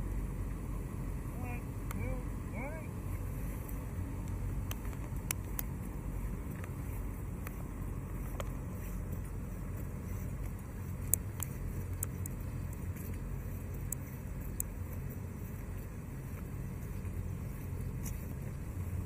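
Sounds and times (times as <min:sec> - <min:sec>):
light clicks: 0:03.7 - 0:05.8.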